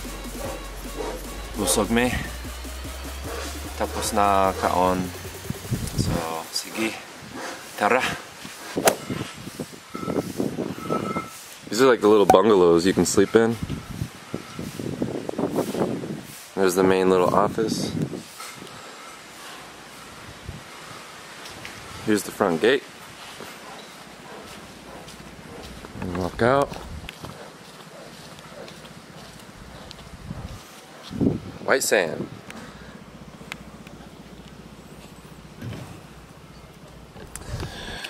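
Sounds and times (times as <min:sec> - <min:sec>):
wind hissing: 0:00.0 - 0:12.0, 0:12.9 - 0:23.7
tree leaves rustling: 0:00.0 - 0:37.2.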